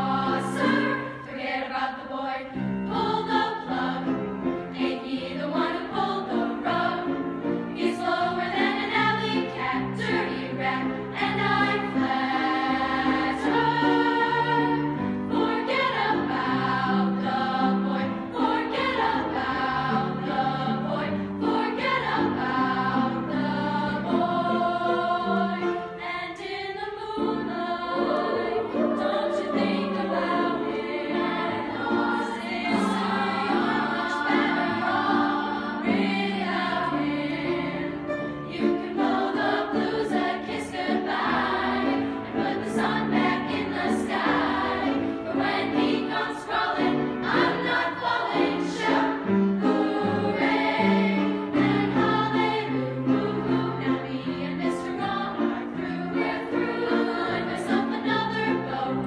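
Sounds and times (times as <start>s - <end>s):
choir of young women singing: 0.0s - 59.0s.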